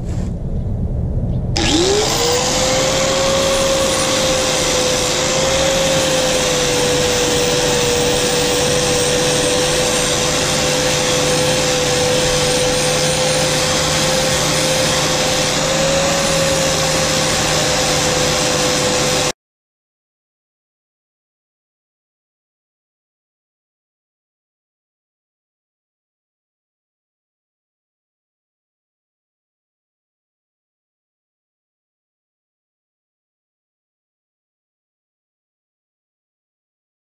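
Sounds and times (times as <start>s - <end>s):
angle grinder grinding steel: 1.6s - 19.3s.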